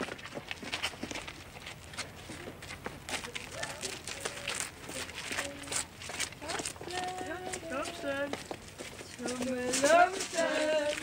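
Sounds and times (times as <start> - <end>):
children calling and chattering: 2.1 - 11.0.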